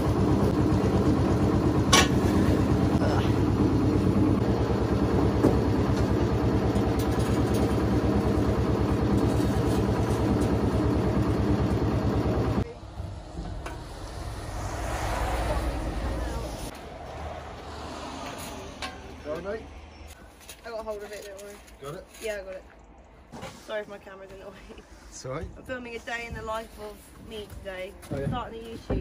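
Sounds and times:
engine running with pulsing beat: 0:00.0 - 0:16.7
low rumble: 0:12.4 - 0:20.0.

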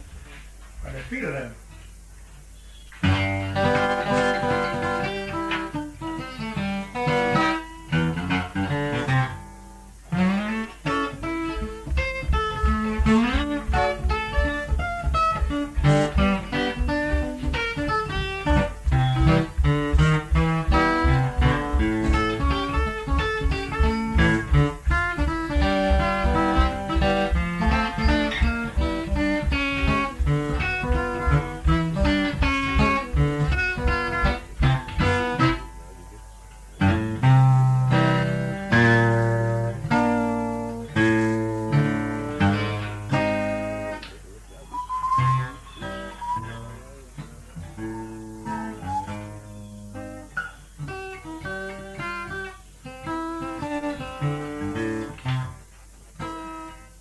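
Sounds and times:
acoustic guitar blues picking: 0:01.7 - 0:57.0.

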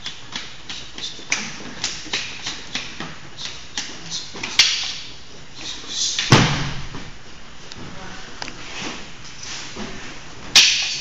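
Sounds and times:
sticks clashing: 0:00.0 - 0:05.1, 0:10.5 - 0:11.0.

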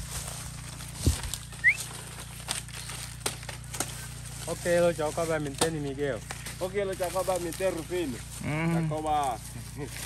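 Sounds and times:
dry leaves crackling and rustling: 0:00.0 - 0:10.0.

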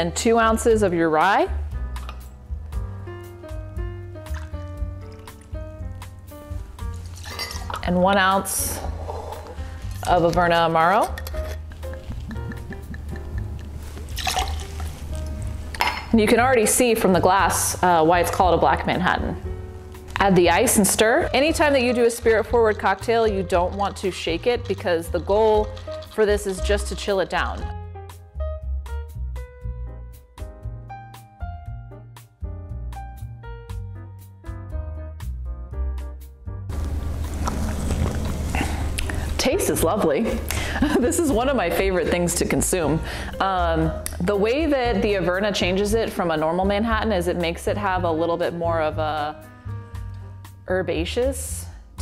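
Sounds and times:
background music with held notes: 0:00.0 - 0:52.0
glass and metal clinks: 0:07.2 - 0:07.7
liquid trickling into glass: 0:07.2 - 0:07.8, 0:14.1 - 0:15.0
person sipping from glass: 0:08.8 - 0:10.0, 0:37.2 - 0:39.4
person breathing in: 0:38.5 - 0:39.4, 0:40.5 - 0:40.8, 0:43.0 - 0:43.4.

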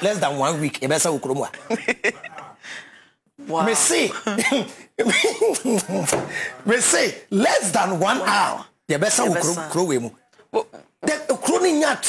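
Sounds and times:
man laughing: 0:01.5 - 0:02.6, 0:04.1 - 0:06.2.

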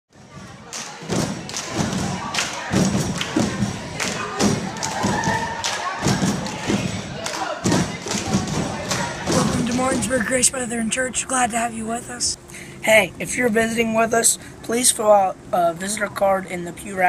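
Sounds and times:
rhythmic thumping: 0:00.2 - 0:14.0
voices: 0:00.2 - 0:17.0.

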